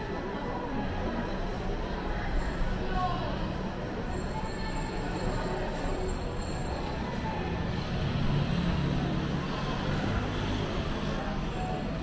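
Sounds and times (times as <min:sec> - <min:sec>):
shopping mall background hum: 0:00.0 - 0:12.0
road traffic rumble: 0:06.8 - 0:12.0.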